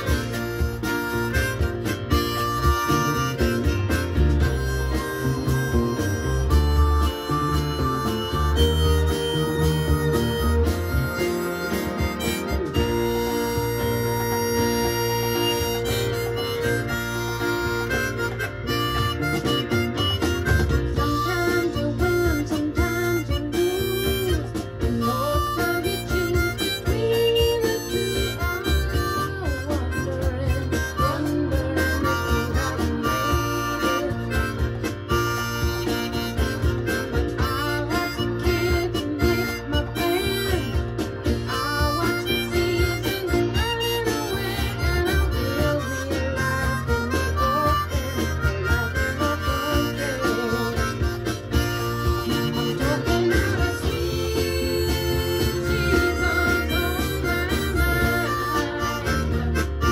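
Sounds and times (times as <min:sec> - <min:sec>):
amplified blues harmonica: 0:00.0 - 0:59.9
backing track with bass and beat: 0:00.0 - 0:59.9.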